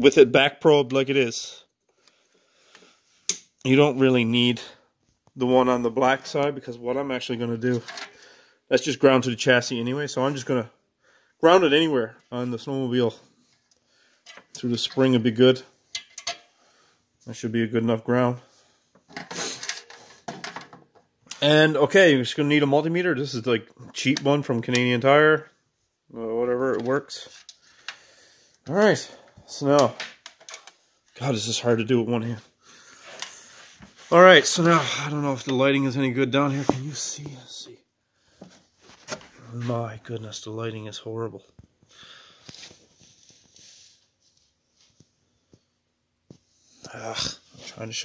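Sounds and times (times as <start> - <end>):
rustling and scraping: 7.6 - 8.2, 33.0 - 37.6, 38.4 - 39.9, 42.4 - 45.2.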